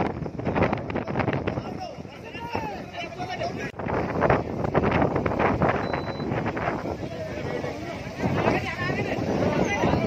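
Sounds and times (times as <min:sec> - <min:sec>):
wind buffeting microphone: 0:00.0 - 0:10.0
road traffic: 0:03.2 - 0:10.0.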